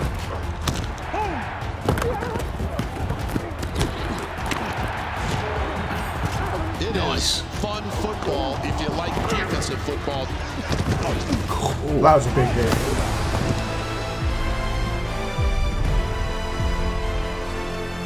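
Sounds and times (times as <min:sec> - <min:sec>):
dramatic music score: 0:00.0 - 0:18.0
people shouting: 0:00.7 - 0:13.0.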